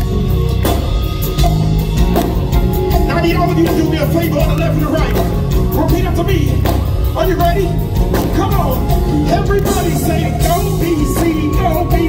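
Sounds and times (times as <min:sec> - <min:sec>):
drum kit steady beat: 0:00.0 - 0:12.0
sustained low bass notes: 0:00.0 - 0:12.0.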